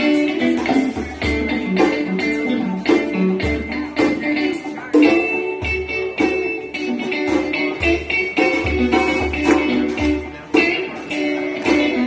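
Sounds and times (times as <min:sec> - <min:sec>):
electric guitar: 0:00.0 - 0:12.0
live band playing: 0:00.0 - 0:12.0.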